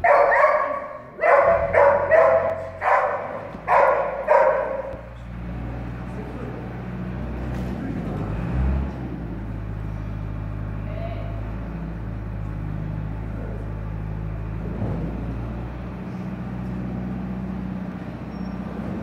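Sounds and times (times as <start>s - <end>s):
dog barking excitedly: 0.0s - 5.2s.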